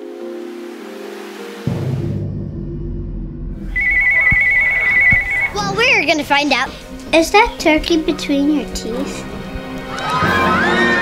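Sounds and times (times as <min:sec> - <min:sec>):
electronic telephone ringer trilling: 0:03.8 - 0:05.6.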